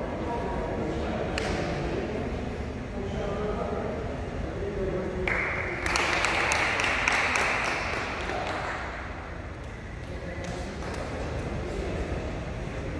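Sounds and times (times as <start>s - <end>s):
crowd clapping: 5.2s - 11.8s.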